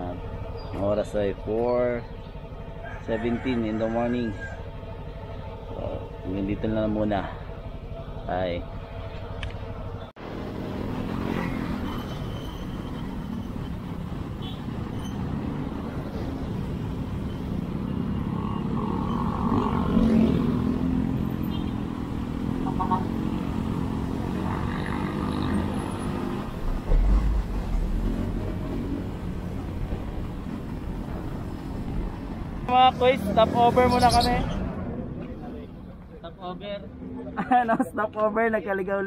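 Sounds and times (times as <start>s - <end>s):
road noise: 0.0s - 39.0s.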